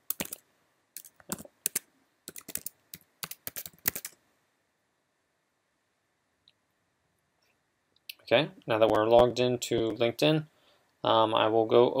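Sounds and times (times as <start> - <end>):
keyboard typing: 0.0 - 0.4, 1.0 - 4.2.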